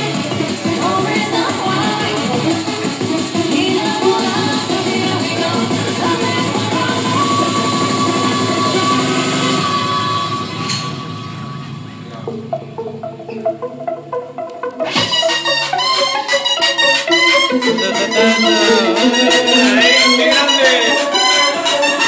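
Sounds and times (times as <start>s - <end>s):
loud dance music: 0.0s - 10.6s, 12.2s - 22.0s.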